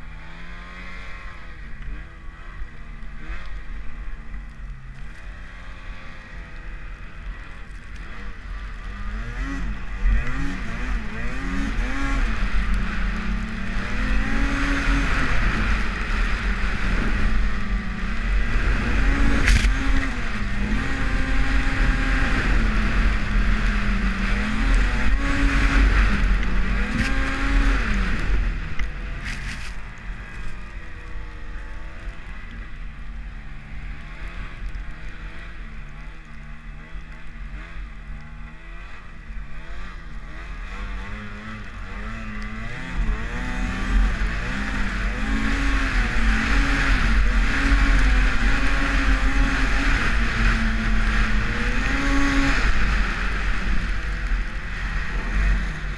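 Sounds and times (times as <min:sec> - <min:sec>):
snowmobile engine revving: 0:00.0 - 0:55.9.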